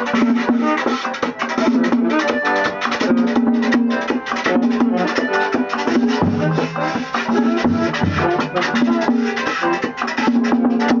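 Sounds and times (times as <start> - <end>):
accordion playing melody: 0.0 - 11.0
drum and shaker beat: 0.0 - 11.0.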